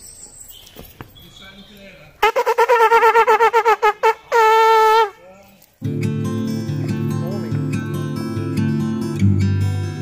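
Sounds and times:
small brass horn call: 2.2s - 5.2s
acoustic guitar music: 5.8s - 10.0s.

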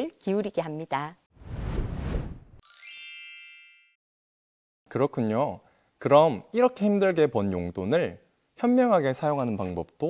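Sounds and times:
bell-like chime: 2.6s - 4.0s.

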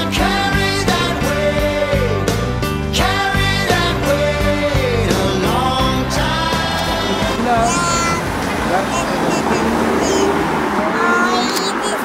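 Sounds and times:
indistinct voices: 2.9s - 12.0s
city traffic noise: 4.4s - 12.0s
small child's high voice: 7.6s - 8.3s, 8.9s - 12.0s.

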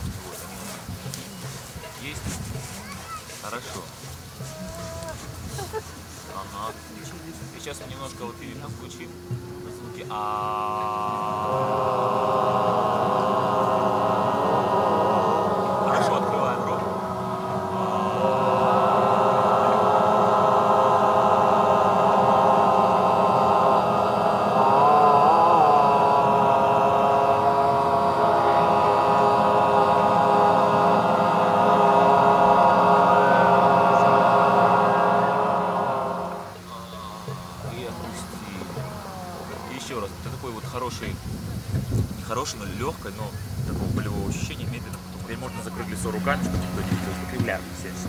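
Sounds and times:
group overtone singing drone: 4.0s - 48.0s.

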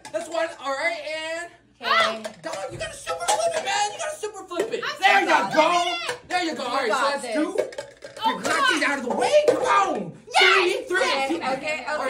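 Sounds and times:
raised voices exclaiming: 8.2s - 11.6s.

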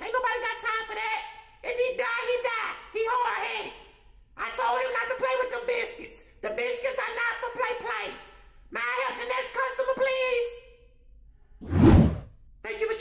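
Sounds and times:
loud whoosh: 11.6s - 12.3s.

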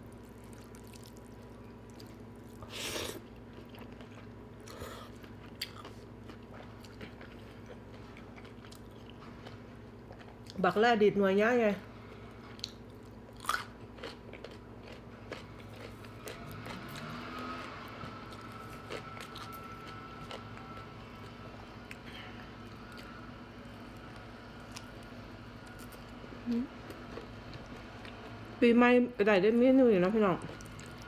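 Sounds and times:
chewing with wet clicks: 0.2s - 2.6s, 3.2s - 10.6s, 12.4s - 23.1s, 30.4s - 31.0s.

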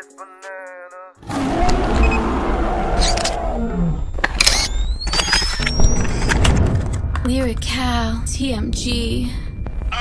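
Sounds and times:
deep roar: 1.2s - 4.1s
rising whine: 1.2s - 6.4s.

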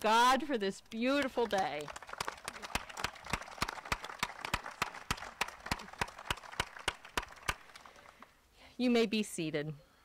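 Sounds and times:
small group applauding: 1.2s - 8.3s.

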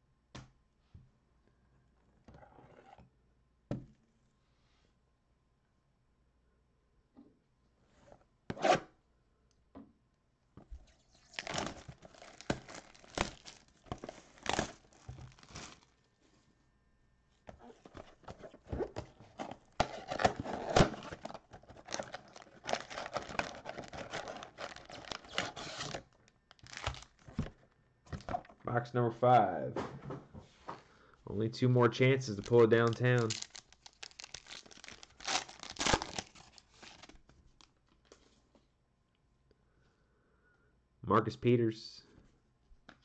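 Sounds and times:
plastic shrink wrap crinkling: 10.9s - 16.1s, 17.6s - 27.6s, 32.2s - 38.2s.

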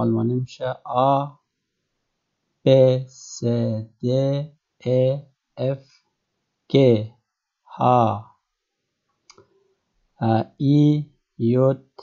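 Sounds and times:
man speaking: 0.0s - 1.3s, 2.7s - 5.8s, 6.7s - 7.1s, 7.8s - 8.2s, 10.2s - 12.0s.

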